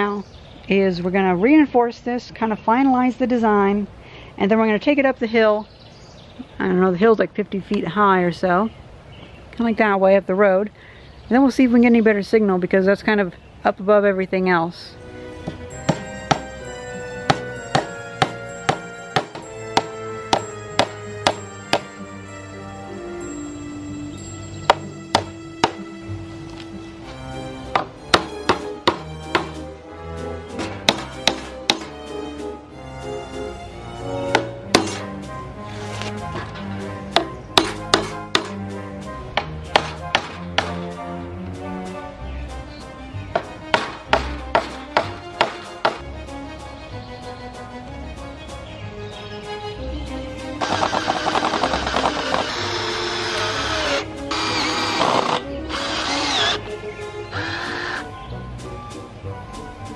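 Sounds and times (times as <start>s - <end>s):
background music: 14.4s - 59.9s
hammer tapping staples into wood: 27.8s - 29.6s.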